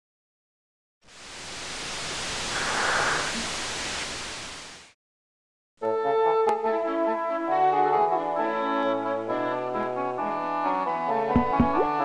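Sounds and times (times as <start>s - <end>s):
hiss-like rushing swell: 1.1s - 5.0s.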